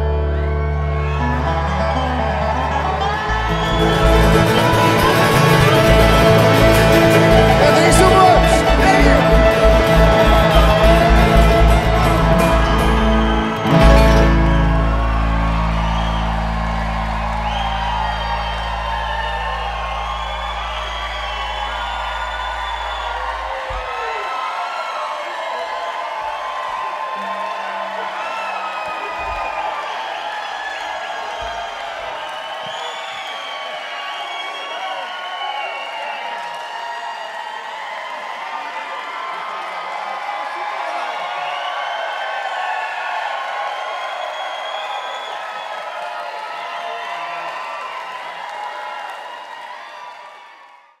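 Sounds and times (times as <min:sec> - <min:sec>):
bluegrass band chord ringing: 0:00.0 - 0:20.6
crowd cheering and whistling: 0:00.0 - 0:51.0.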